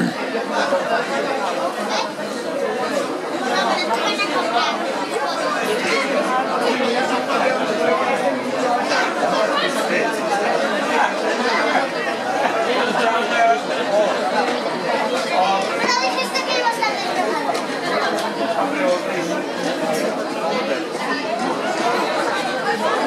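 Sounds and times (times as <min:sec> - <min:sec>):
chatter of many voices: 0:00.0 - 0:23.0.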